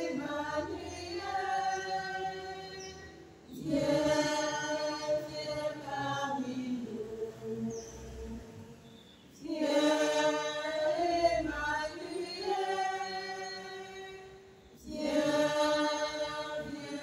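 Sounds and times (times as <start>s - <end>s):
group singing in chorus: 0.0s - 17.0s.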